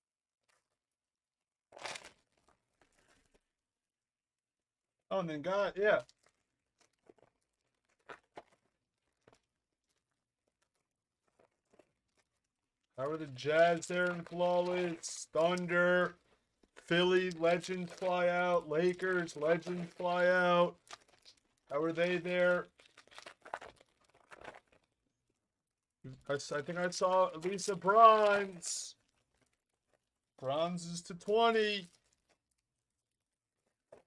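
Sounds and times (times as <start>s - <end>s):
trading cards rustling: 6.0s - 24.8s, 26.1s - 32.5s.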